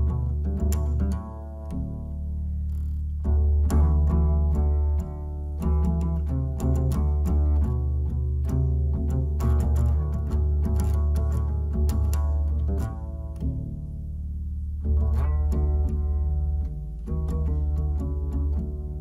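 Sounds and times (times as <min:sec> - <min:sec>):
double bass plucked: 0:00.0 - 0:19.0.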